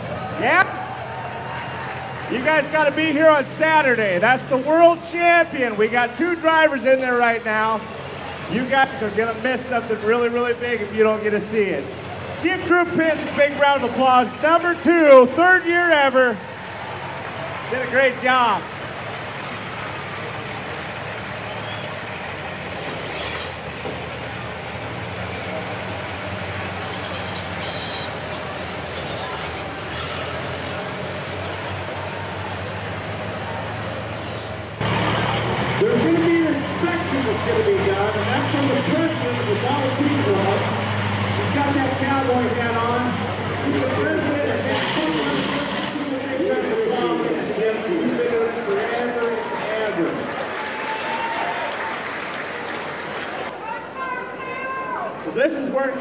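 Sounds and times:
car engine idling: 0.0s - 50.0s
people talking: 0.3s - 0.8s, 2.3s - 16.4s, 17.7s - 18.7s, 35.0s - 40.7s, 41.3s - 50.4s, 53.4s - 56.0s.

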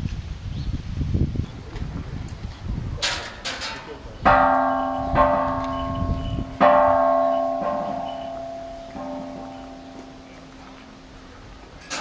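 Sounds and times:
temple bell ringing: 4.3s - 11.1s.

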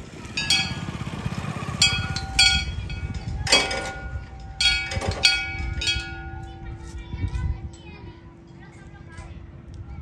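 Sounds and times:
motorcycle engine chugging: 0.0s - 6.9s.

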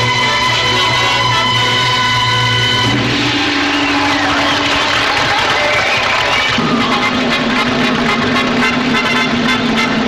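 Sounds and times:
steady low note: 0.0s - 10.0s.

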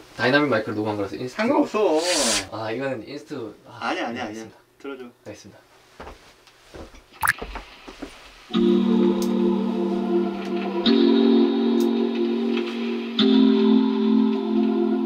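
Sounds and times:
held chords of song demo: 8.6s - 15.0s.

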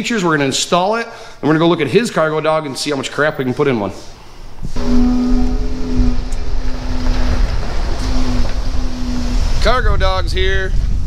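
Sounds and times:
wind rumble on microphone: 4.6s - 11.0s
car engine droning: 4.7s - 10.1s.

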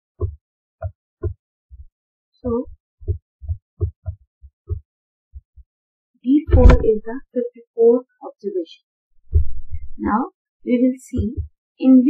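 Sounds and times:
stylus tapping on tablet: 11.2s - 11.5s.

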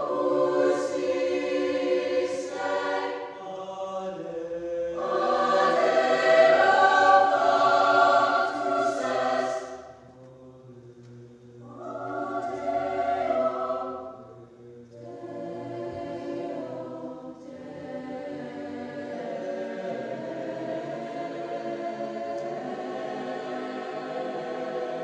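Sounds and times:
choir singing sustained chords: 0.0s - 25.0s.

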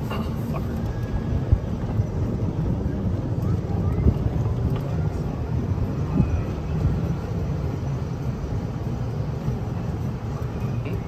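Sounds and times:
golf cart rumbling: 0.0s - 11.0s
wind buffeting microphone: 0.0s - 11.0s.

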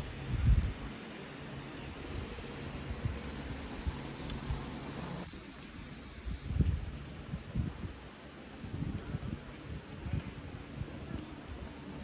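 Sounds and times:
wind buffeting microphone: 0.0s - 1.0s, 1.8s - 12.0s.

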